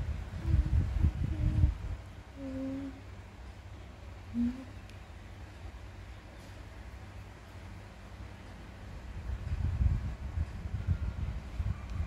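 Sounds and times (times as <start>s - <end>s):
woman humming: 0.4s - 3.1s, 4.3s - 4.8s.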